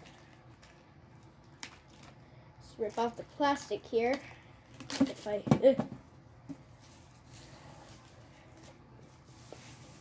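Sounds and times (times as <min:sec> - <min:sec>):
plastic wrap rustling: 0:00.0 - 0:02.2.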